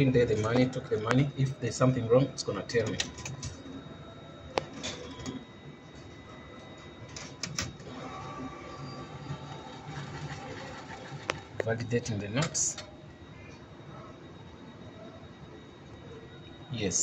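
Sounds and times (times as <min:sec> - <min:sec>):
banknote mechanism whirring: 0:06.8 - 0:13.0.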